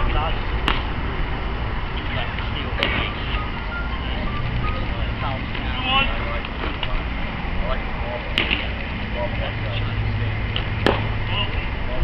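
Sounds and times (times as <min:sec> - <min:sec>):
distant voices calling out: 0:00.0 - 0:12.0.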